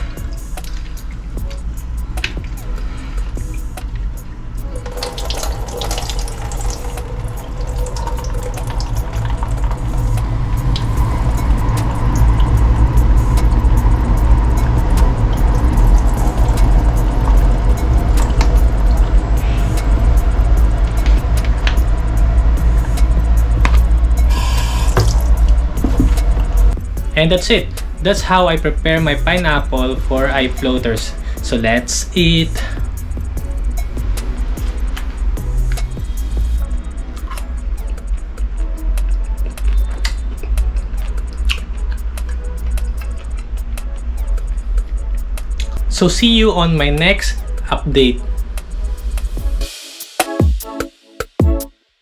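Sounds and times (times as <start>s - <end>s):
background music: 0.0s - 51.9s
water splashing in a sink: 4.8s - 10.9s, 24.6s - 26.4s.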